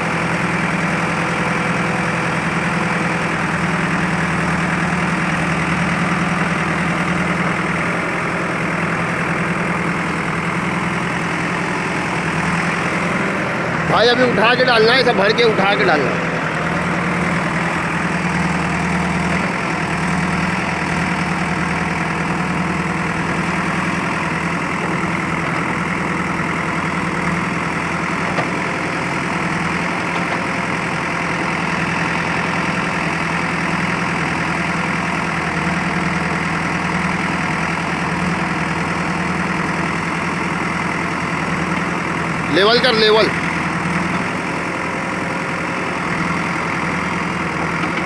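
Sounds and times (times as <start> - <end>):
diesel engine running: 0.0 - 48.0.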